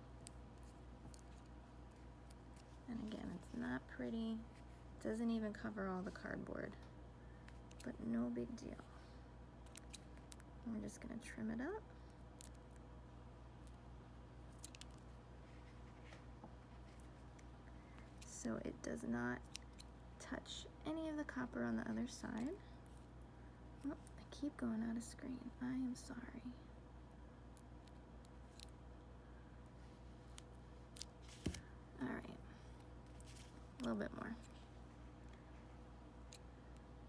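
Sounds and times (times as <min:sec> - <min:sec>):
low room hum: 0:00.0 - 0:37.0
scissors snipping: 0:09.6 - 0:10.4, 0:14.6 - 0:15.0, 0:19.4 - 0:19.9.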